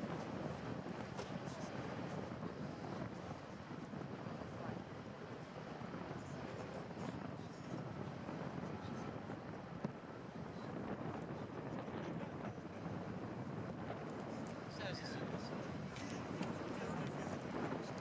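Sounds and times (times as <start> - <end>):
wind on microphone: 0.0 - 18.0.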